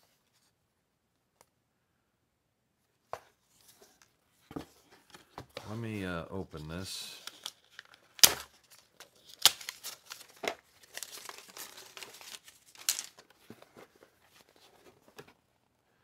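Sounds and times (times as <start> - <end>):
cardboard boards rustling: 3.1 - 5.9, 6.6 - 15.5
paper crinkling: 5.0 - 15.4.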